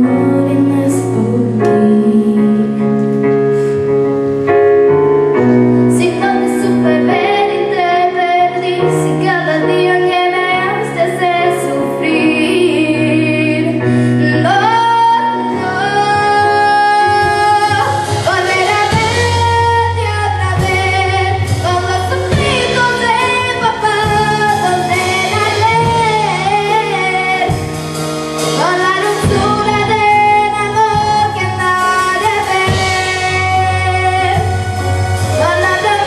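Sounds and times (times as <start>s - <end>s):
girl singing into a microphone: 0.0s - 3.7s, 5.9s - 27.8s, 28.4s - 36.0s
drums: 0.0s - 36.0s
keyboard: 0.0s - 36.0s.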